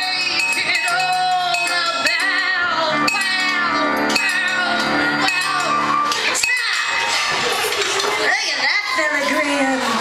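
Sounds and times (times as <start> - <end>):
voices calling out: 0.0 - 10.0.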